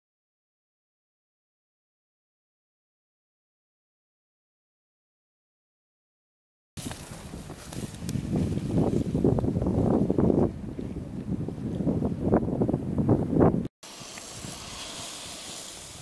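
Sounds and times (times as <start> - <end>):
wind buffeting microphone: 6.8 - 16.0
steady hiss: 13.8 - 16.0.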